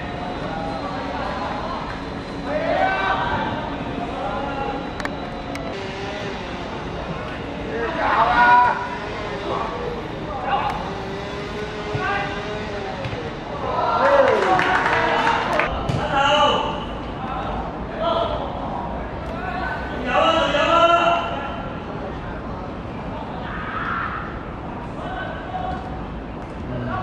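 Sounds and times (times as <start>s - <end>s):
crowd shouting: 5.8s - 16.8s.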